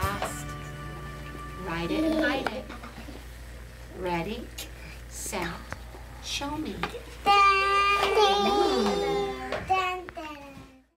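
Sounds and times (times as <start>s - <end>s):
children calling out in sing-song: 7.2s - 10.2s.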